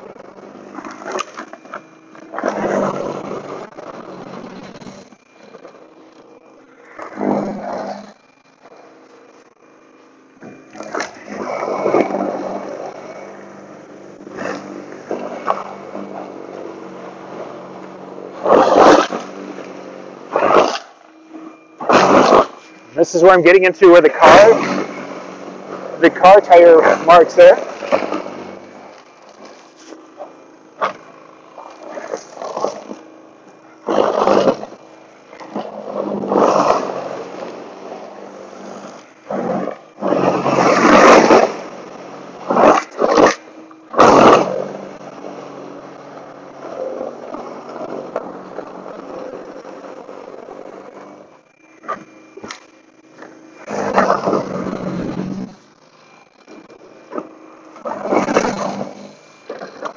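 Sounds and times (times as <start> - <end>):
auger scraping and throwing snow: 0.0 - 59.9
snow blower motor humming: 0.0 - 59.9.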